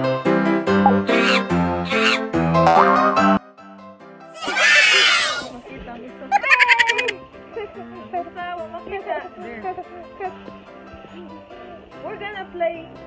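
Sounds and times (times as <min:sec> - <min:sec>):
cartoon boing: 0:02.6 - 0:03.4
bright keyboard tune: 0:02.6 - 0:03.5.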